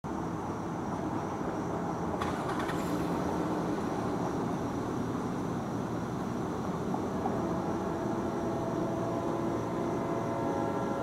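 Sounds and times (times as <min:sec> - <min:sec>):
distant diesel locomotive rumble: 0:00.1 - 0:11.0
thin steady high tone: 0:04.0 - 0:11.0.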